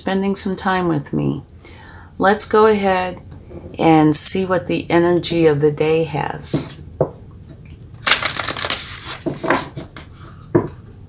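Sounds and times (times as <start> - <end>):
cards being shuffled: 8.0 - 10.1.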